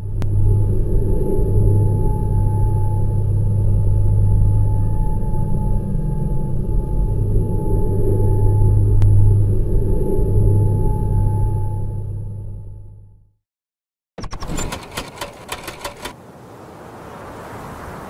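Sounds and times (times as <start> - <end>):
low rumbling drone: 0.0 - 13.3
sharp click: 14.2 - 16.2.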